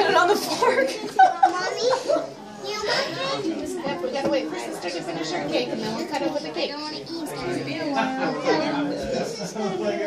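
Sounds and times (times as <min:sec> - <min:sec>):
children's voices: 0:00.0 - 0:10.0
people talking: 0:00.0 - 0:10.0.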